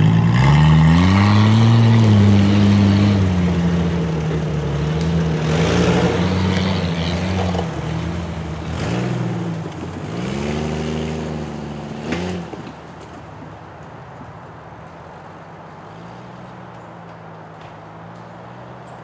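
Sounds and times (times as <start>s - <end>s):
engines revving on dirt trail: 0.0s - 19.0s.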